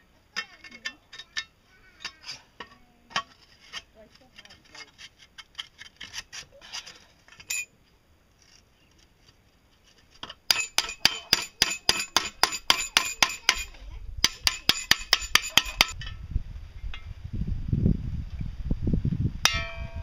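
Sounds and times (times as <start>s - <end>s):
metal clinks and scrapes: 0.3s - 7.8s, 9.9s - 16.2s
hammer blows on metal: 10.5s - 16.2s, 19.4s - 20.0s.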